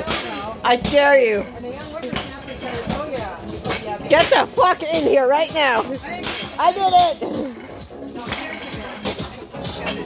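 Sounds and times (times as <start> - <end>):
people talking and calling out: 0.0 - 10.0.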